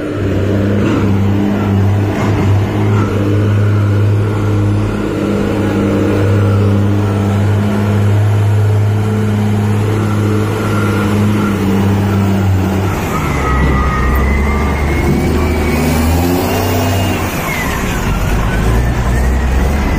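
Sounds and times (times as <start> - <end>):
diesel engine running: 0.0 - 19.9.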